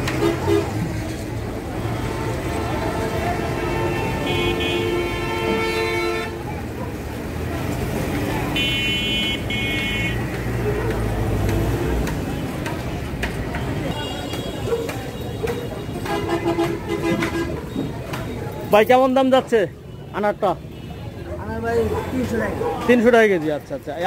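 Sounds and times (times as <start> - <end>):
vehicle horns honking: 0.0 - 0.8, 1.9 - 6.5, 8.5 - 10.4, 13.7 - 18.2
street traffic rumble: 0.0 - 24.0.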